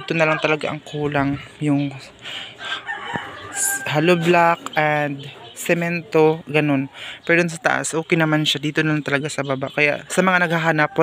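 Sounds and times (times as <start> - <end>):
rooster crowing: 2.6 - 4.6.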